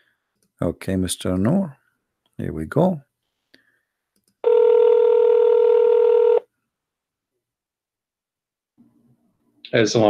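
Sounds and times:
electronic call tone: 4.4s - 6.4s.

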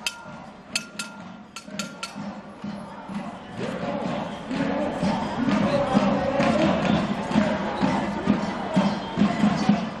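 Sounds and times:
utensil banging metal saucepan: 0.8s - 2.2s.

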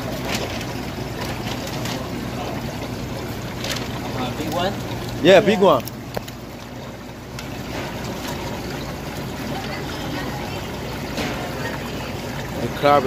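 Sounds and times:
water rushing and bubbling in tanks: 0.0s - 13.0s.

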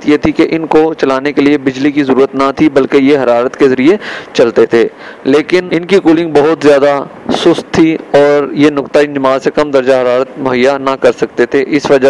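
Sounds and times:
man narrating: 0.0s - 12.0s.

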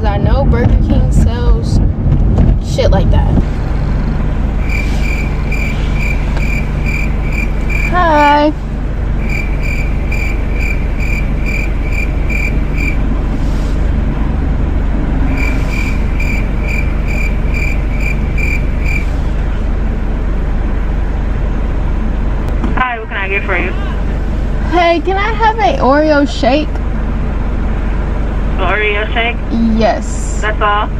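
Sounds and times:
car engine idling: 2.7s - 29.4s.

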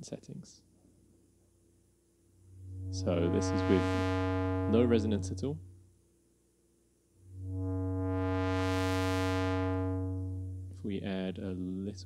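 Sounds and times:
buzzy synthesizer note: 2.5s - 5.8s, 7.2s - 11.0s.

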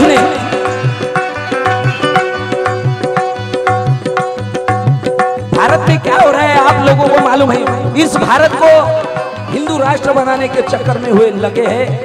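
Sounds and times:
harmonium and banjo melody: 0.0s - 12.0s
tabla and dholak drumming: 0.0s - 12.0s.

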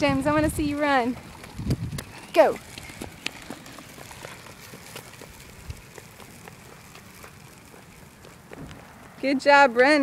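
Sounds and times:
footsteps on asphalt: 0.0s - 10.0s.

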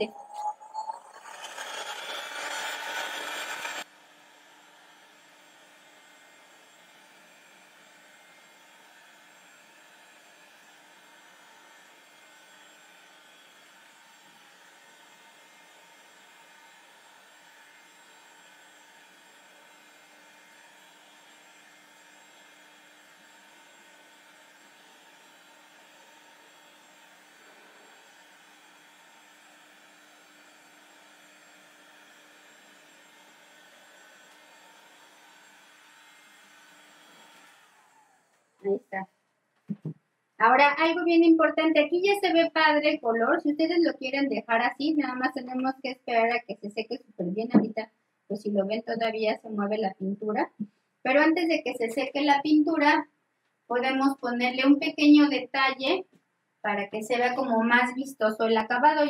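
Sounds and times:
heat gun blowing: 0.0s - 38.8s.

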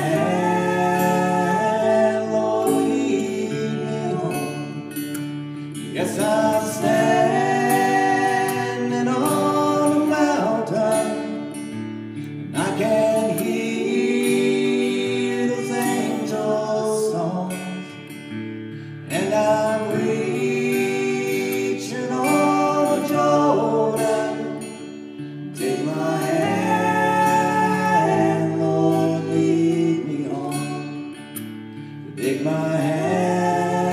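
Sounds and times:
woman and man singing: 0.0s - 5.0s, 5.8s - 11.8s, 12.5s - 18.0s, 19.1s - 31.3s, 32.1s - 33.9s
acoustic guitar: 0.0s - 33.9s.

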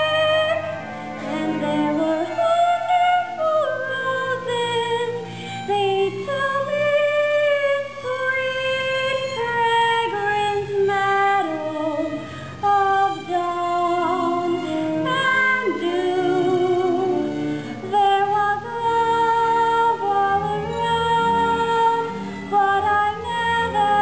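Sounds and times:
woman singing with vibrato: 0.0s - 24.0s.

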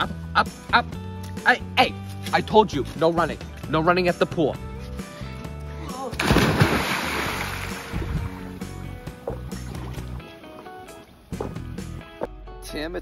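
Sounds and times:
background music: 0.0s - 13.0s
splash into swimming pool: 6.2s - 8.5s.

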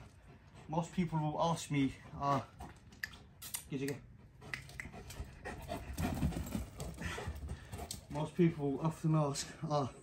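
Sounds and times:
dog panting: 0.0s - 9.0s.

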